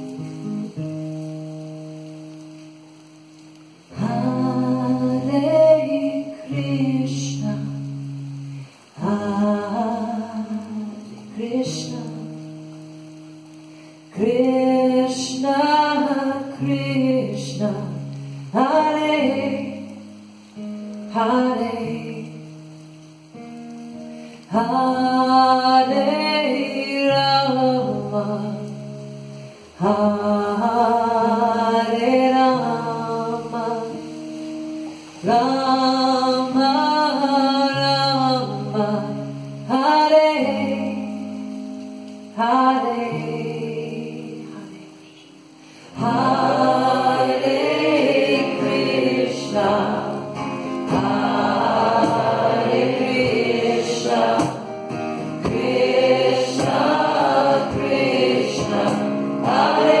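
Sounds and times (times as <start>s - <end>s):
acoustic guitar chords: 0.0s - 60.0s
woman singing devotional chant: 4.0s - 7.8s, 9.0s - 12.4s, 14.2s - 20.0s, 21.1s - 22.4s, 24.5s - 28.8s, 29.8s - 34.2s, 35.2s - 41.1s, 42.4s - 45.2s, 46.0s - 54.7s, 55.4s - 60.0s.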